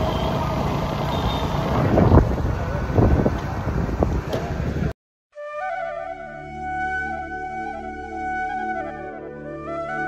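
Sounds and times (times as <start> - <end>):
road and traffic rumble: 0.0 - 5.0
wind buffeting microphone: 1.6 - 4.9.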